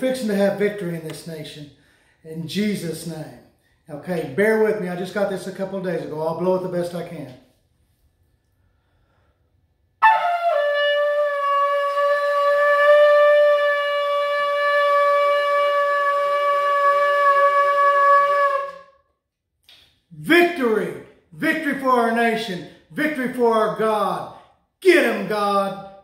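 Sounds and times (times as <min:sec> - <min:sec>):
shofar horn long held note: 0:10.0 - 0:19.0.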